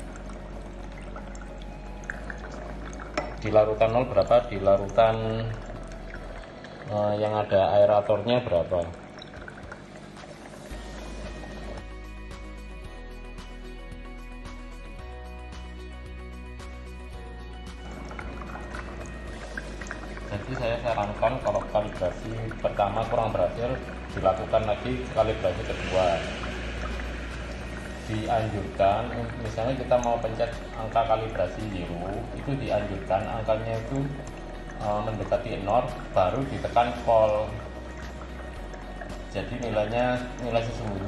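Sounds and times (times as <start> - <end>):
aerator bubbling in water: 0.0 - 12.8, 17.0 - 41.0
background music: 0.0 - 41.0.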